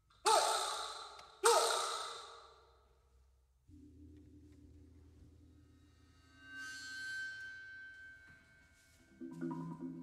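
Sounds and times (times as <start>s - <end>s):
low sustained tone: 3.6s - 10.0s.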